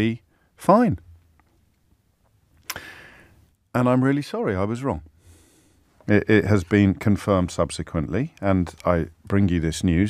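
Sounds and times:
mouth click: 2.6s - 2.9s
short breath in: 2.7s - 3.4s, 5.2s - 5.9s.

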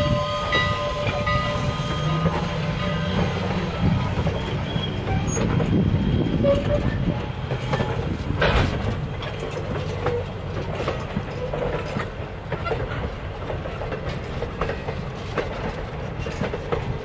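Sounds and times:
train wheels rumbling on rail: 0.0s - 17.0s
wheels clicking over rail joints: 0.5s - 17.0s.

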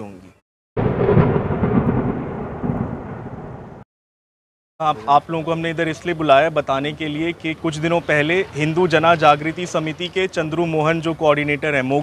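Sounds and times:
loud low rumbling: 0.8s - 3.8s.

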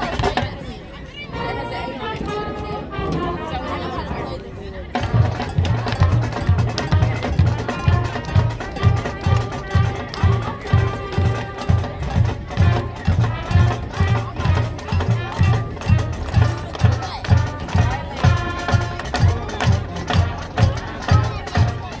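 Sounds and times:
marching band brass: 0.0s - 22.0s
steady bass drum beat: 4.9s - 22.0s.

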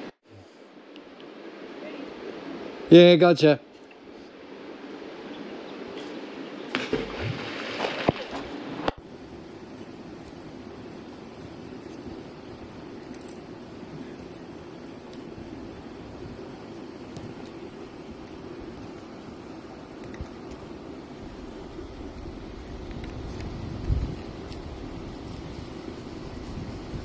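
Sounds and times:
creek water flowing: 3.8s - 26.3s.

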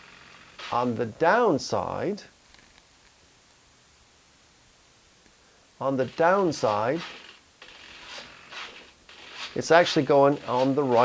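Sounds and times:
small servos whirring: 6.0s - 9.6s.

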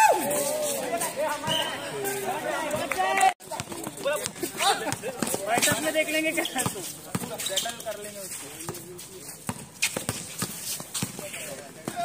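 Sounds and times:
basketball bouncing on concrete: 3.4s - 7.4s, 9.5s - 12.0s.

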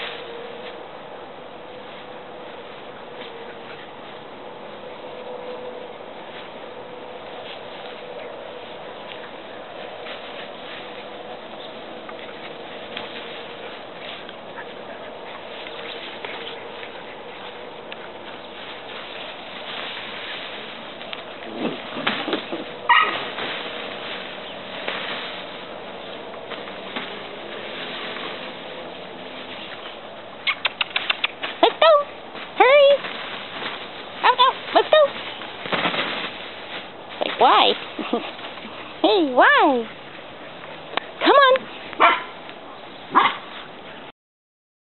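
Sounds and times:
scuffling and rustling on fabric: 1.6s - 30.4s, 31.4s - 42.7s
puppy barking: 22.9s - 23.2s, 42.0s - 42.4s, 43.1s - 43.5s
puppy yipping: 22.9s - 23.2s, 30.4s - 32.1s, 42.0s - 42.3s, 43.1s - 43.4s.

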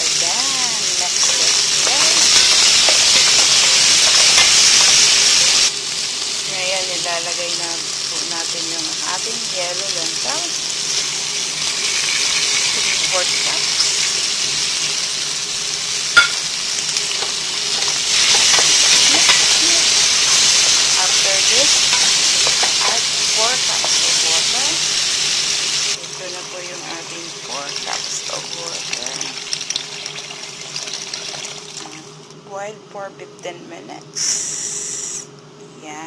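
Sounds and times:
vegetables sizzling in oil: 0.0s - 32.2s
spoon knocking on pot: 16.2s - 16.4s.

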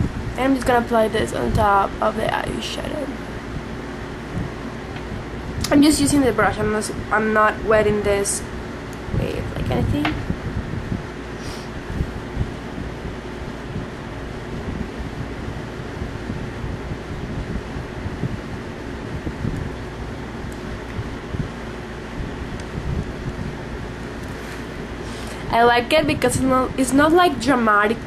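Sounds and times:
faint constant hum: 0.0s - 28.0s
fan-like hiss and rumble: 0.0s - 28.0s.

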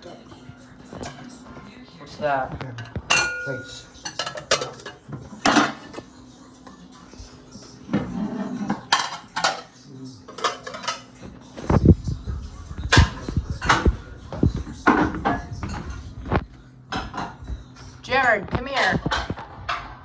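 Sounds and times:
dishes and utensils clinking: 0.0s - 11.8s, 12.8s - 20.0s.

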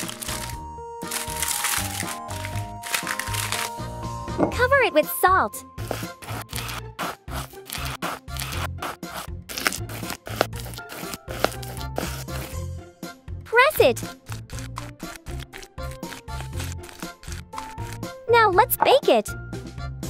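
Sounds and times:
aluminium foil crinkling: 0.0s - 3.8s, 9.5s - 12.5s, 14.5s - 18.0s.

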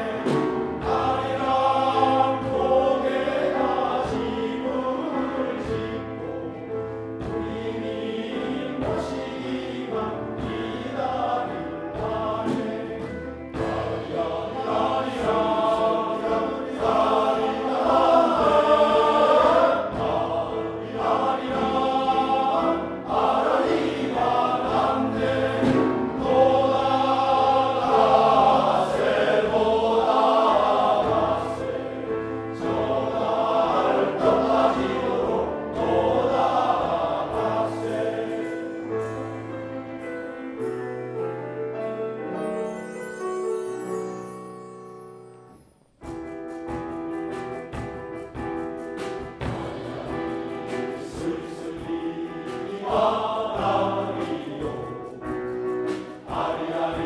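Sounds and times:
men's choir singing: 0.0s - 40.8s, 49.0s - 57.0s.

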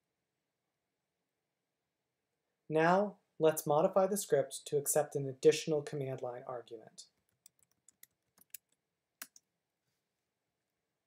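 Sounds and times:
faint keyboard keystrokes: 7.2s - 9.4s.

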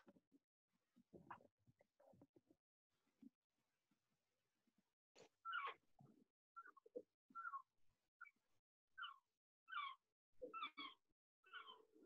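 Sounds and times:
faint high animal calls: 5.4s - 5.8s, 6.6s - 8.4s, 9.0s - 12.0s.

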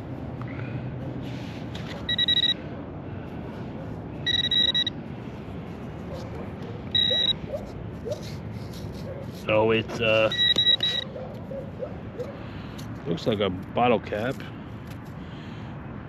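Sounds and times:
short electronic beeps: 2.0s - 2.6s, 4.2s - 5.0s, 7.0s - 7.4s, 10.2s - 11.1s.

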